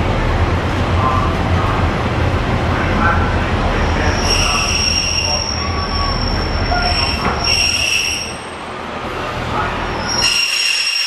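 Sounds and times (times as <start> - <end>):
train running gear rumble: 0.0 - 11.0
wheel squeals: 4.1 - 8.4, 10.0 - 11.0.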